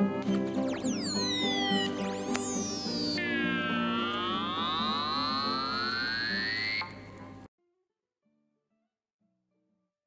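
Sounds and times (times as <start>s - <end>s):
electronic gliding pitched tones: 0.6s - 7.0s.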